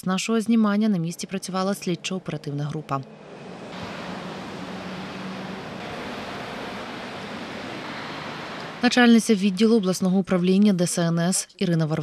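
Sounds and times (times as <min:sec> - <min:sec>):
outdoor background hiss: 0:00.2 - 0:11.1.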